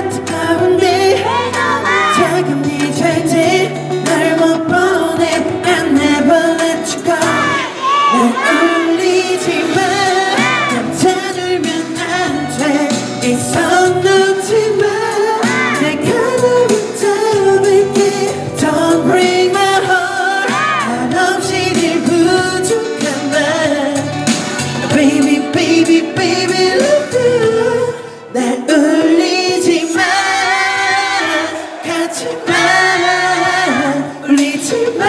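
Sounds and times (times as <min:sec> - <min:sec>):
man singing into a microphone: 0:00.0 - 0:35.0
pop backing music: 0:00.0 - 0:35.0.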